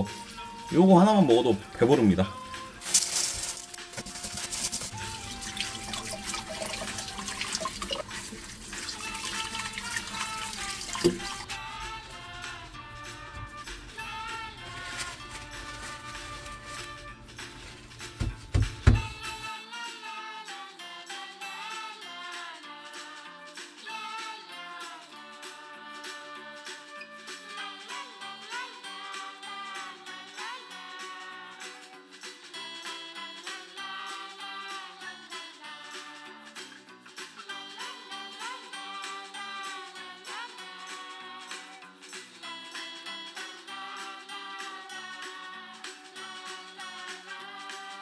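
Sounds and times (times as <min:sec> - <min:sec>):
background music: 0:00.0 - 0:48.0
scrubbing with salt in a metal bowl: 0:02.8 - 0:18.1
kitchen tap running: 0:03.1 - 0:19.4.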